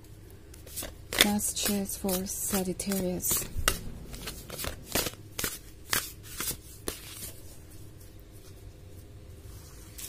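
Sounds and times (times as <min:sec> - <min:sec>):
cards being shuffled: 0:00.5 - 0:07.6.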